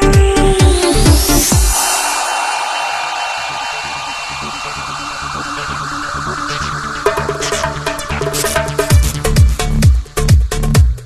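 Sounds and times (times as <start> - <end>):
electronic dance music: 0.0 - 10.9.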